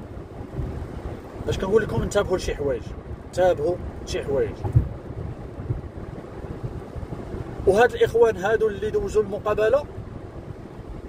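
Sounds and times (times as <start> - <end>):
low rumble inside car cabin: 0.0 - 11.0
wind buffeting microphone: 0.0 - 11.0.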